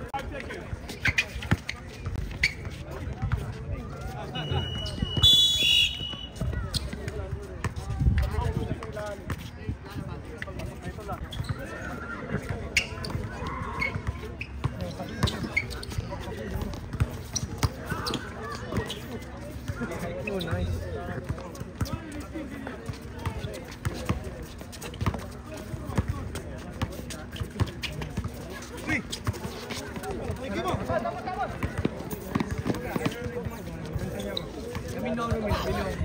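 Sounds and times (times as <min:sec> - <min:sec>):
players calling out: 0:03.5 - 0:07.3.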